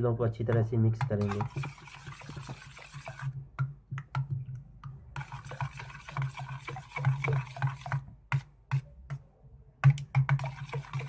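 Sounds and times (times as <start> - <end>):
spoon stirring yogurt: 0.4 - 9.2, 9.8 - 11.0.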